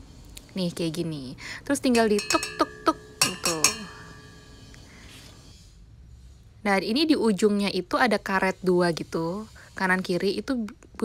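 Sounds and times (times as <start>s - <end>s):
grater clinking on metal bowl: 1.8s - 5.2s
bowl ringing: 1.8s - 5.4s.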